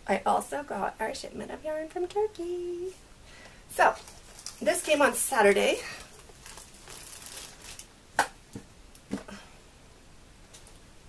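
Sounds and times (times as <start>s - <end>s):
packaging rustling: 3.9s - 8.0s.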